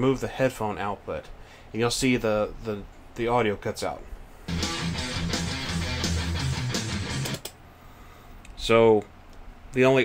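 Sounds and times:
guitar backing track: 0:04.5 - 0:07.6.

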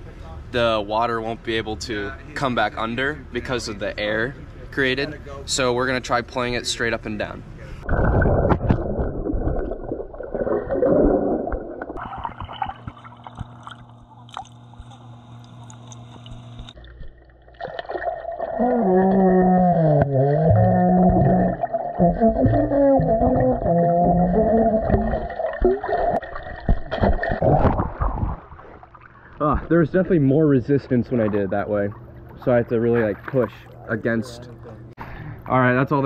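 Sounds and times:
water splashing and bubbling: 0:07.8 - 0:29.8, 0:31.1 - 0:34.9
water gurgling: 0:07.8 - 0:30.4.

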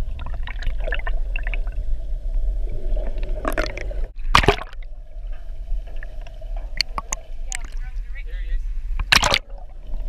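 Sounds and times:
underwater air bubbles crackling: 0:00.0 - 0:08.0, 0:09.0 - 0:10.0
underwater low rumble: 0:00.0 - 0:10.0.

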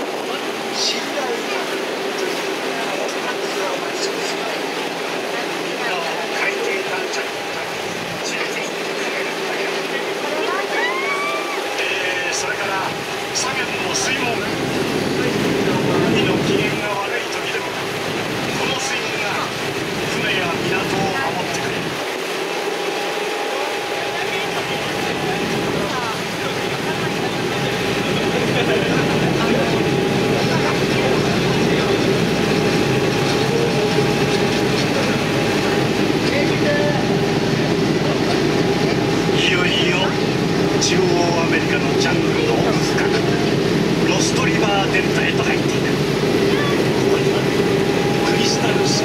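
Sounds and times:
boat engine hum: 0:00.0 - 0:49.0
water wash: 0:00.0 - 0:49.0.

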